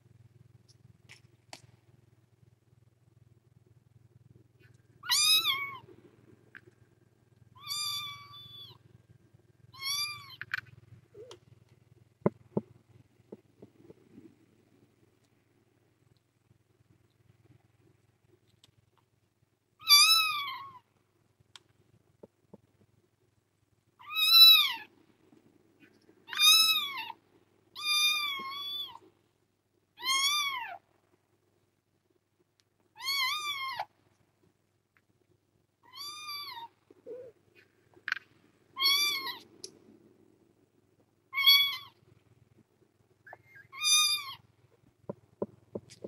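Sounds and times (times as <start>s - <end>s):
kitten meowing: 5.0s - 5.8s, 7.6s - 8.8s, 9.8s - 10.6s, 19.8s - 20.8s, 24.0s - 24.9s, 26.3s - 27.2s, 27.8s - 29.0s, 30.0s - 30.8s, 33.0s - 33.9s, 35.8s - 37.3s, 38.8s - 39.5s, 41.3s - 42.0s, 43.3s - 44.4s.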